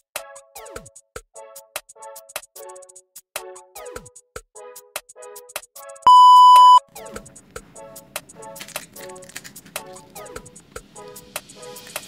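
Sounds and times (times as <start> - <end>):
loud steady beep: 6.1 - 6.8.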